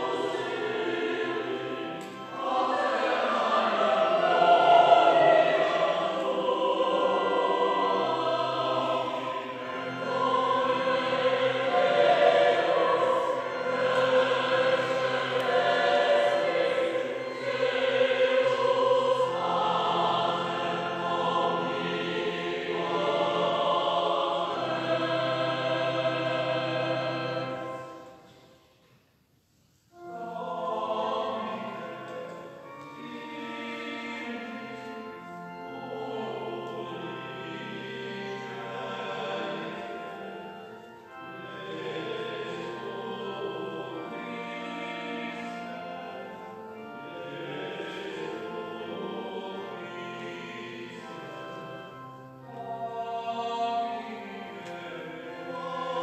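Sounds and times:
choir singing: 0:00.0 - 0:28.9, 0:29.9 - 0:56.0.

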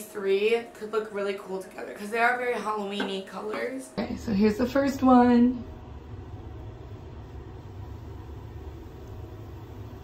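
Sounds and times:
low rumble: 0:04.0 - 0:10.0.

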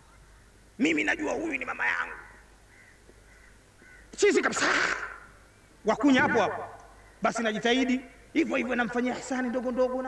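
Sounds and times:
faint outdoor background sounds: 0:00.0 - 0:10.0
man speaking through a microphone: 0:05.9 - 0:10.0.

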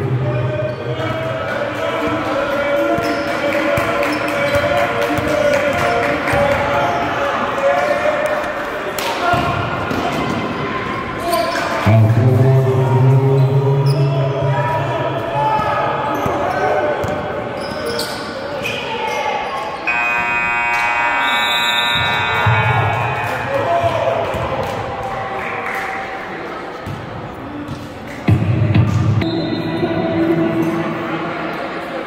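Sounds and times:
scoreboard buzzer: 0:19.8 - 0:23.4.

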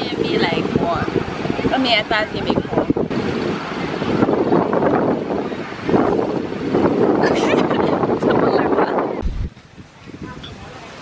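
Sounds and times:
waves breaking on shore: 0:00.0 - 0:11.0
wind buffeting microphone: 0:00.0 - 0:11.0.

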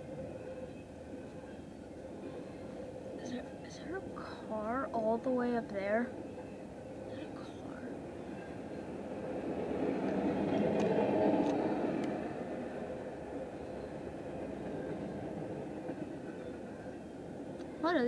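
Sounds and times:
freight train wheels rumbling: 0:00.0 - 0:18.0.

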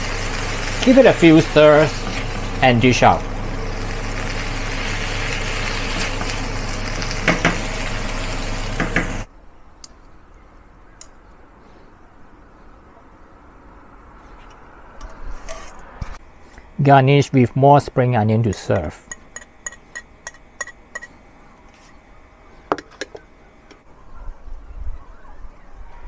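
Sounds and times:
potato strips sizzling in a wok: 0:00.0 - 0:09.3.

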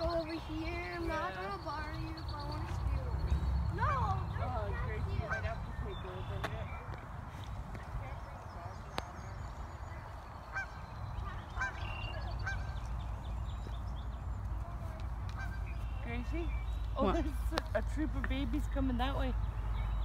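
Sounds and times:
geese honking: 0:03.8 - 0:06.9, 0:10.4 - 0:13.0, 0:15.3 - 0:17.3.

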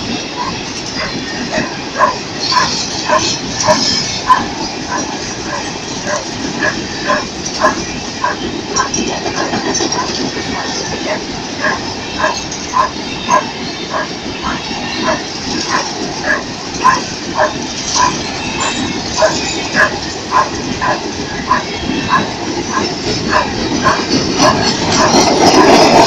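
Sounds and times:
train wheels rolling on rail: 0:00.0 - 0:26.0
dog barking: 0:00.4 - 0:25.8.

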